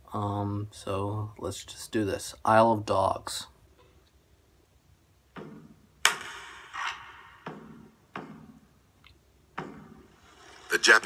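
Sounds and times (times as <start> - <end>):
percussion hits: 5.3 - 8.8, 9.5 - 10.2.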